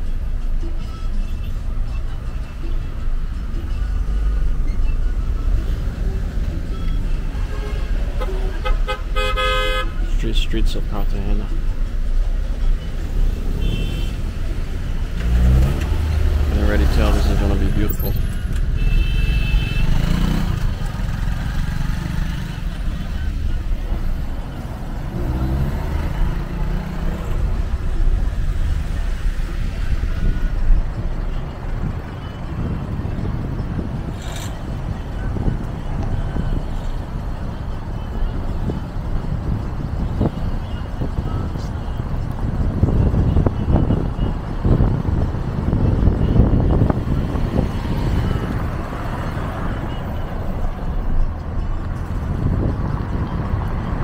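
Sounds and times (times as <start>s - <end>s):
car engine and road rumble: 0.0s - 54.0s.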